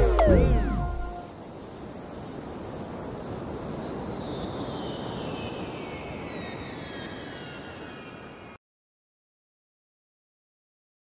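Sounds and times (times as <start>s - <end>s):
high whistle sliding down: 0.0s - 1.3s.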